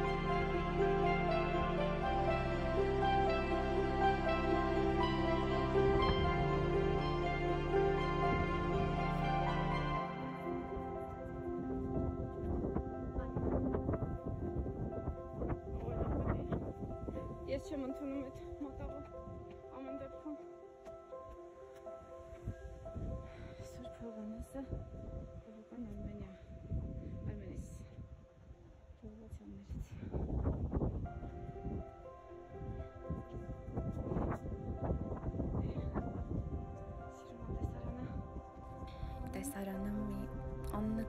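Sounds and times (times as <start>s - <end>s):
soft background music: 0.0s - 41.0s
wind buffeting microphone: 10.4s - 20.4s, 21.8s - 41.0s.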